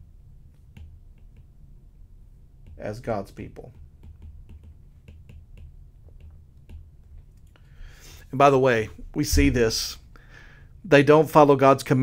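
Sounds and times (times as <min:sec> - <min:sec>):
low steady hum: 0:00.0 - 0:12.0
stylus tapping glass screen: 0:03.8 - 0:06.9.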